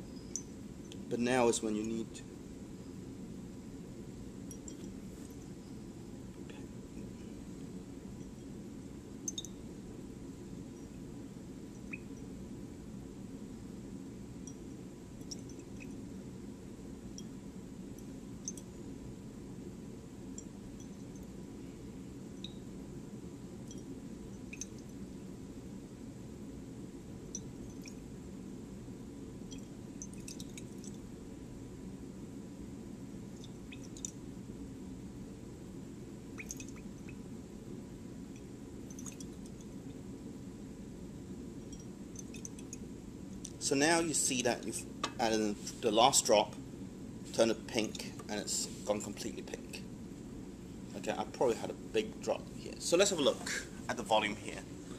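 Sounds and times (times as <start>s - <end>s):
low hum: 0.0s - 54.9s
glass ticks and clinks: 4.5s - 5.4s, 9.2s - 9.6s, 15.2s - 16.0s, 18.4s - 18.7s, 23.6s - 24.8s, 29.5s - 31.0s, 36.4s - 36.9s, 38.9s - 39.6s, 41.6s - 42.8s.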